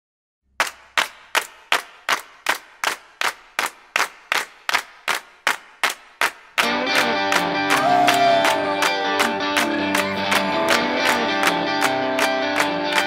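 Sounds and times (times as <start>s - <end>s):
rock song: 6.6s - 13.0s.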